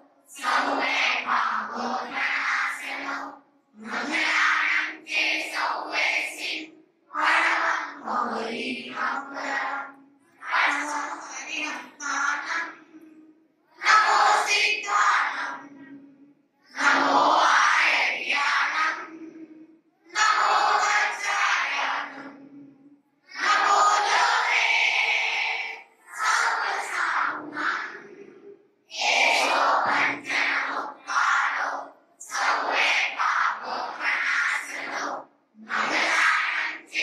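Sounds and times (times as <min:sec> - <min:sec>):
women singing unaccompanied: 0:00.0 - 0:16.1, 0:16.7 - 0:22.6, 0:23.4 - 0:27.8, 0:29.0 - 0:30.9.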